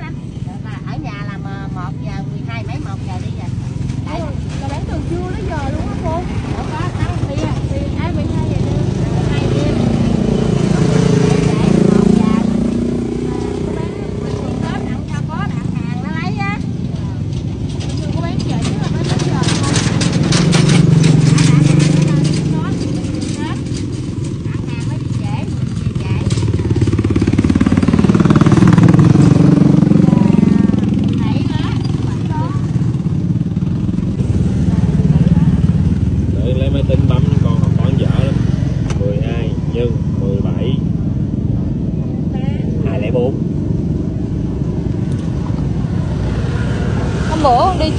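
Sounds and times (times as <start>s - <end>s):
motorbikes and vehicles passing: 0.0s - 47.9s.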